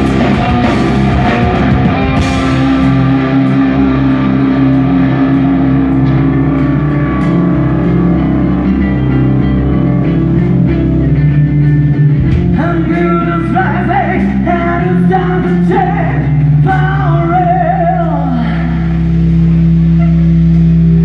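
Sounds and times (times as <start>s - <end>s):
live rock band playing: 0.0s - 18.3s
held low guitar notes: 0.0s - 21.0s.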